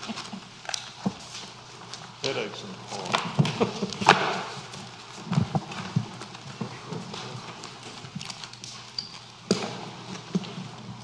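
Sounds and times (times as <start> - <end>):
footsteps: 0.0 - 11.0
chairs being moved: 2.8 - 11.0.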